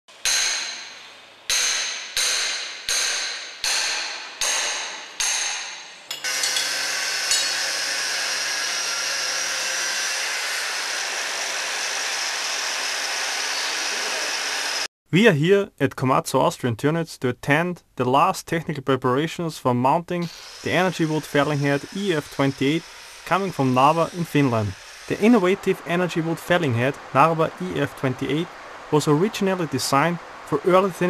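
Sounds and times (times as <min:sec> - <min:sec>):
hammer striking metal: 0:00.1 - 0:08.3
steady hiss: 0:20.1 - 0:31.0.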